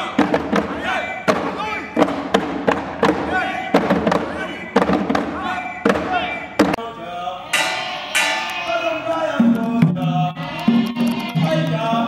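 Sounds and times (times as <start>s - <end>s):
voices singing and calling: 0.0s - 2.2s, 3.0s - 12.0s
drums struck in uneven beat: 0.0s - 6.8s.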